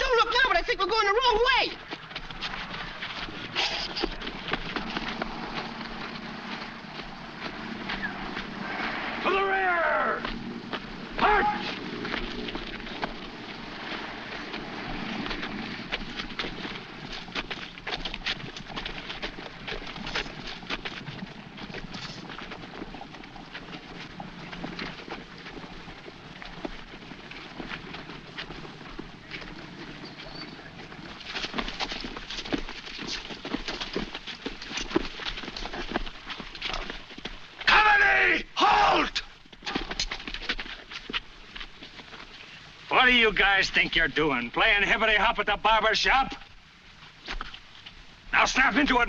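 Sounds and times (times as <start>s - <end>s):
feet marching on dirt road: 0.0s - 49.0s.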